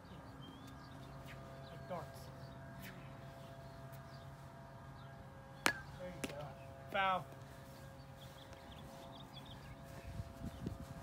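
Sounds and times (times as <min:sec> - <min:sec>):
plastic bat striking ball: 0:05.6 - 0:06.4.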